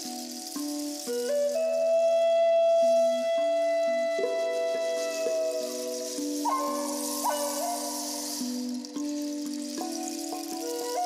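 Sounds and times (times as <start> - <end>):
wooden flute melody: 0.0 - 11.0.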